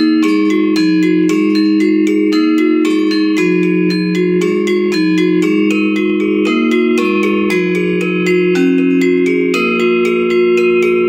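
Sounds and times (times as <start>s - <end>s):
metallophone struck notes ringing: 0.0s - 11.0s
low sustained note: 3.2s - 11.0s.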